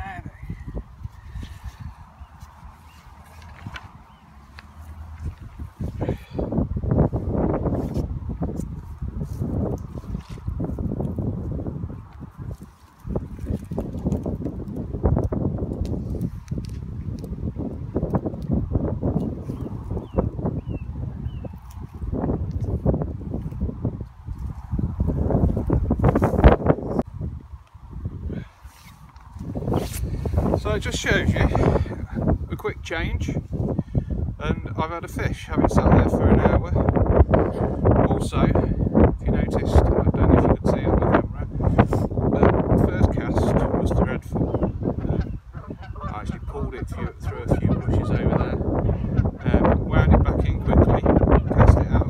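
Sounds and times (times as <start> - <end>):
gusty wind on microphone: 0.0 - 52.0.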